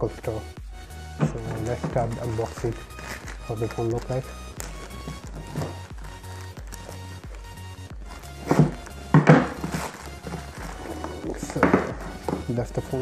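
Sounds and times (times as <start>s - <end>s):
background music with bass line: 0.0s - 13.0s
plastic bag rustling: 1.2s - 13.0s
scissors cutting plastic bag: 1.6s - 12.3s.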